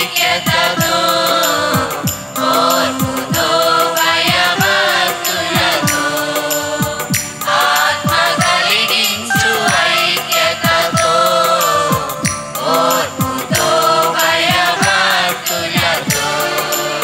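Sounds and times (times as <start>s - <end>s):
steady percussion beat: 0.0s - 17.0s
women singing together: 0.0s - 17.0s.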